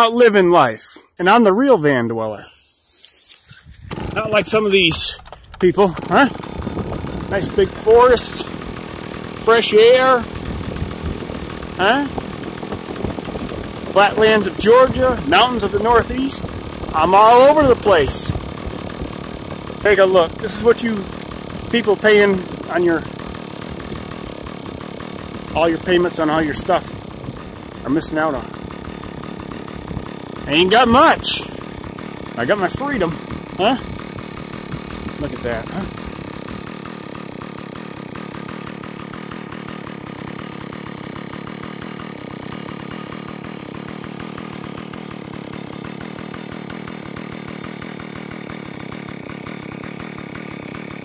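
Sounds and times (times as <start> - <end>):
small chainsaw engine idling: 0.0 - 51.0.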